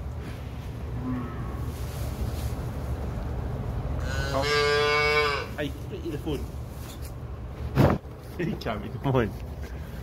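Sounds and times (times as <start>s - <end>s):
steady low rumble: 0.0s - 4.2s
calf bawling: 4.0s - 5.6s.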